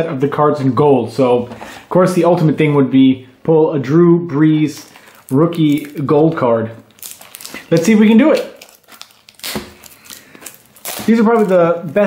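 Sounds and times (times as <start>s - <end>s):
cardboard box and packs rustling: 7.0s - 12.0s.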